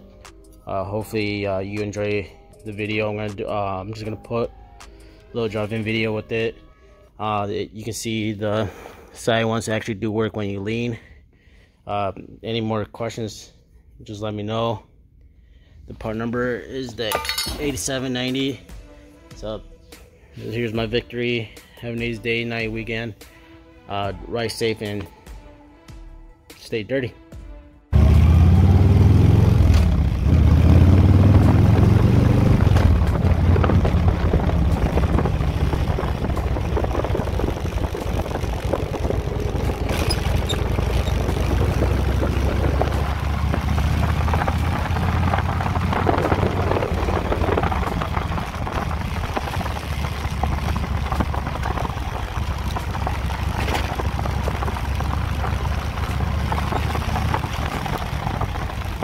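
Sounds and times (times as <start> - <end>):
motorcycle engine running: 27.9 - 59.0.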